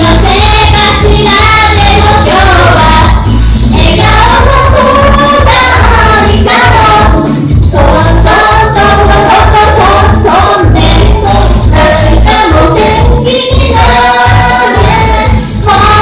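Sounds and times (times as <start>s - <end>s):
continuous bass: 0.0s - 16.0s
group singing into microphones: 0.0s - 16.0s.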